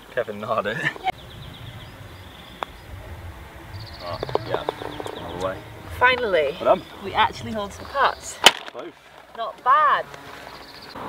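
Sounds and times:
wind rumble on microphone: 1.1 - 8.4
bird trilling faintly: 1.1 - 8.5.

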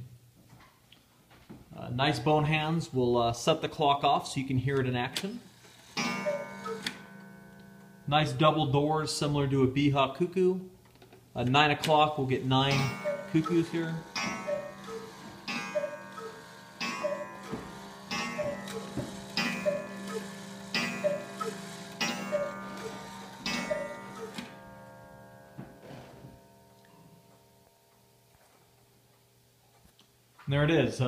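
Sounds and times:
cuckoo clock calls: 5.5 - 7.9, 12.4 - 25.4
ringing gong strike: 6.0 - 8.1, 12.6 - 27.7.

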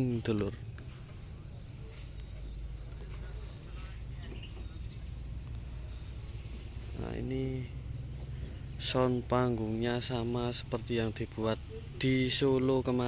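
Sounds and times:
steady low rumble: 0.0 - 11.7
distant voices: 0.0 - 13.0
faint bird chirps: 0.0 - 13.0.

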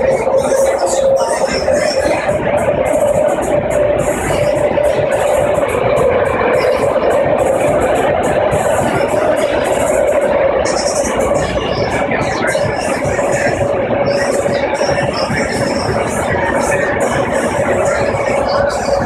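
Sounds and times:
train car running rumble: 0.0 - 19.0.

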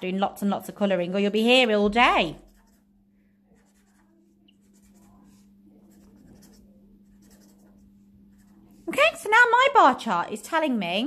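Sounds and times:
faint steady hum: 0.0 - 11.0
felt-tip pen scribbling on paper: 2.4 - 2.9, 3.5 - 8.8.

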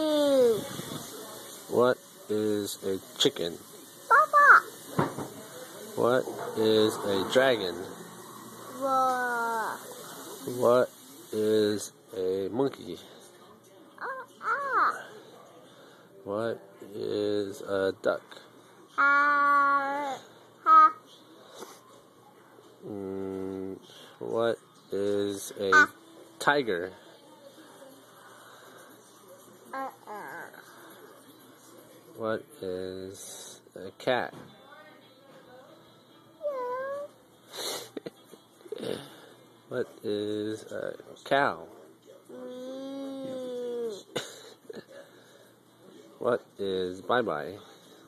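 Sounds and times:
toddler imitating a monkey: 4.1 - 4.7
toddler meowing: 36.4 - 37.1.

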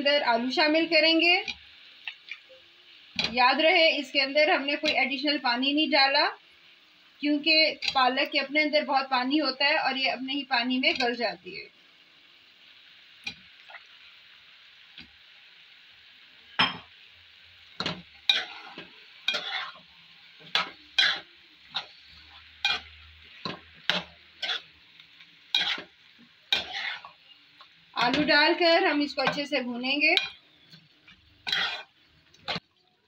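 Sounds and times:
food sizzling in a pan: 0.0 - 33.0
metal spoon scraping a pan: 17.8 - 24.7, 25.4 - 27.3, 28.0 - 32.6.

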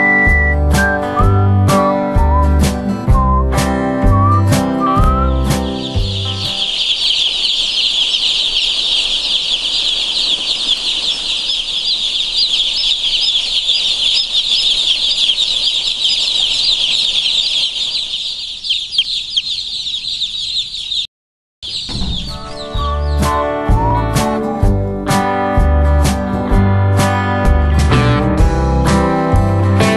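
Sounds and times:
chicks peeping: 4.0 - 24.7.

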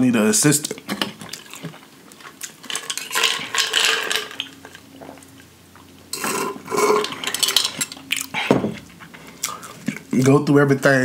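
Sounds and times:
ice cubes rattling in a glass jar: 2.4 - 4.8.

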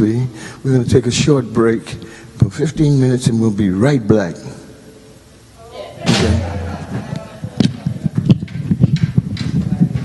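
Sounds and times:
man talking: 0.0 - 4.6.

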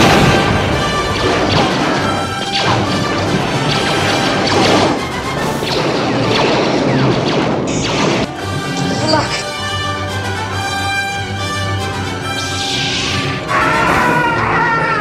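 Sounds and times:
blaster shots: 0.0 - 9.6, 12.2 - 14.2
orchestral score: 0.0 - 15.0.

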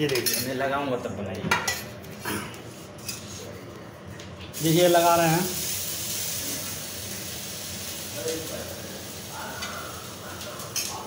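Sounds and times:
food sizzling in a pan: 4.6 - 11.0.

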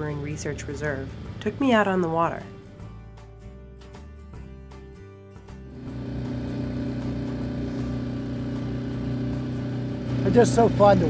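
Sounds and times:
outboard motor humming: 0.0 - 2.8, 5.6 - 11.0.

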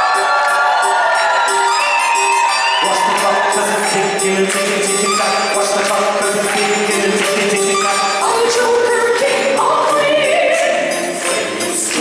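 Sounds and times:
choir-like backing voices: 0.0 - 12.0
woman singing operatically: 7.7 - 10.8.

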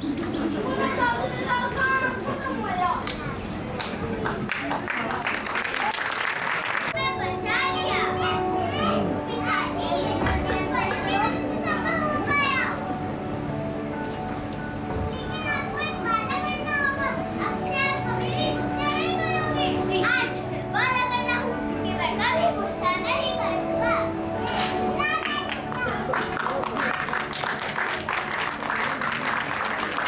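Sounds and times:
children chattering and calling: 0.0 - 4.2, 6.9 - 14.0, 14.8 - 30.0
background music with held notes: 6.9 - 30.0.

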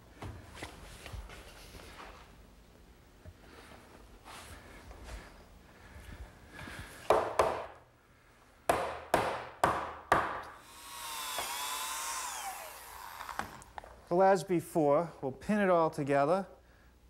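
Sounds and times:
mallet knocking wood: 8.7 - 10.5
motor whine: 10.6 - 13.8.

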